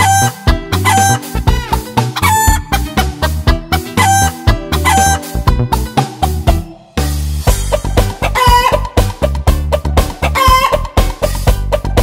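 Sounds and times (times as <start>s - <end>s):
children's song backing track: 0.0s - 12.0s.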